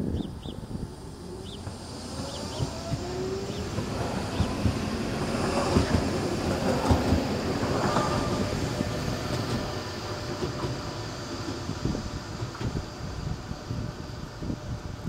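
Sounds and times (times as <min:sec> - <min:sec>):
tram passing: 0:00.0 - 0:15.0
wheels knocking on track: 0:01.6 - 0:11.8.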